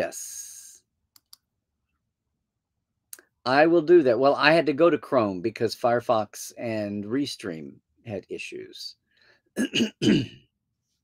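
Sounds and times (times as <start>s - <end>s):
man clearing his throat: 9.6s - 10.5s.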